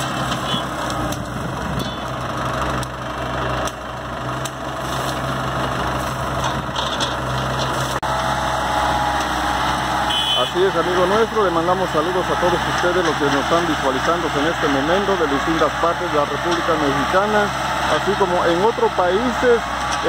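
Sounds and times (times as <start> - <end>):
tractor diesel engine running: 0.0 - 20.0.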